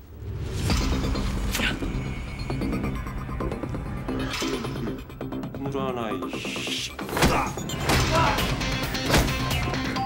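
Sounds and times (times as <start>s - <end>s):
dramatic film score: 0.0s - 10.0s.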